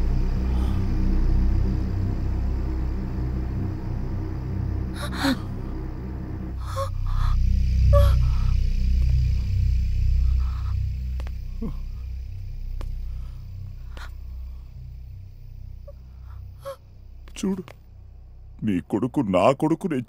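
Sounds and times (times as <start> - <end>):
low sustained drone: 0.0 - 19.8
breath-like gasps: 5.0 - 5.7, 6.6 - 8.6.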